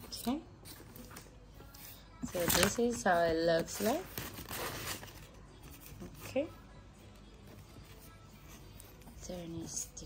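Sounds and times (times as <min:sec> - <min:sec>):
plastic packaging crinkling: 0:02.2 - 0:06.3.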